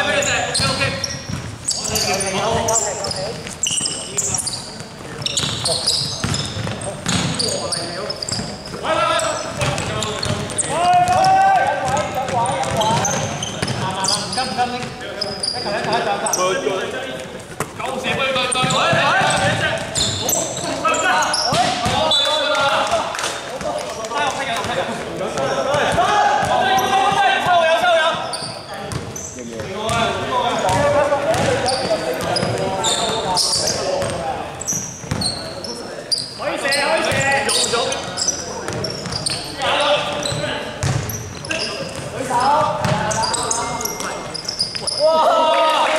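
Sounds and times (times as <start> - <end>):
players calling out: 0.0 - 45.9
basketball bouncing on hardwood floor: 5.4 - 7.4, 9.6 - 13.8, 30.7 - 32.7, 35.0 - 35.3, 40.3 - 41.1, 42.8 - 43.0.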